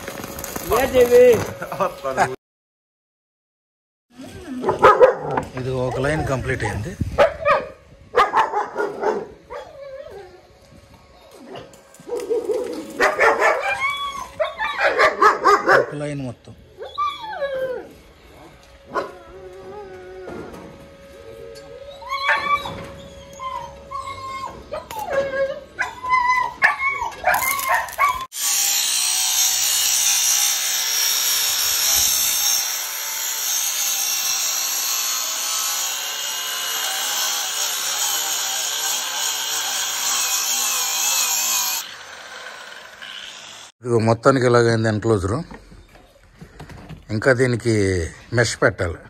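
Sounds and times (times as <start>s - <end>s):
angle grinder cutting steel: 0.0s - 2.3s, 27.3s - 43.8s
dog whining and yipping: 8.3s - 10.4s, 11.2s - 15.6s, 16.8s - 20.5s, 21.3s - 28.3s.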